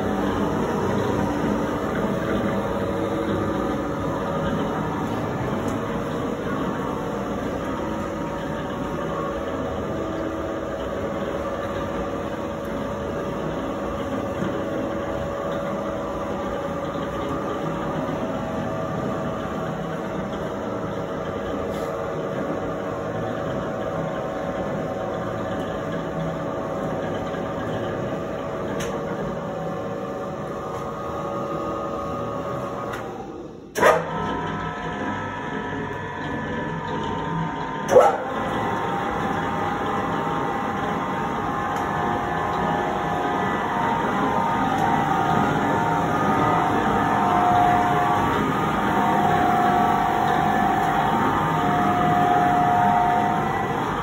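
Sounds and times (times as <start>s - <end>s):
dough mixer motor humming: 0.0s - 54.0s.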